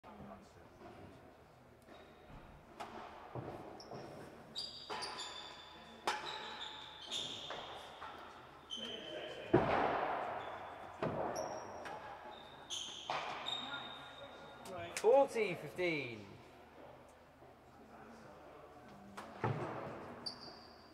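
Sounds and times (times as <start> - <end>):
shoe squeaks: 3.7 - 9.5, 10.4 - 14.6, 20.2 - 20.9.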